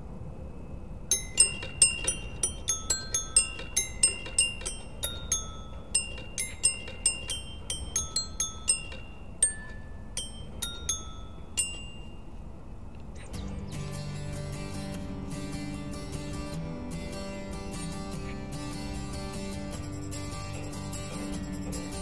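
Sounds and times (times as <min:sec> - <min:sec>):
melody of high ringing notes: 0:01.1 - 0:12.6.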